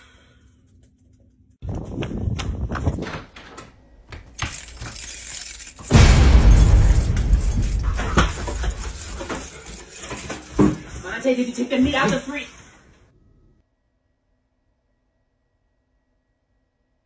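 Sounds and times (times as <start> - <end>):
keys jangling at door lock: 4.2 - 11.0
loud commotion with thumps: 5.9 - 8.9.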